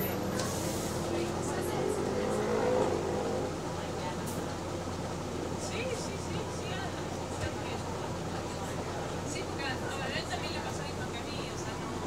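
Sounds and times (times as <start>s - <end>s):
bus engine humming: 0.0s - 12.0s.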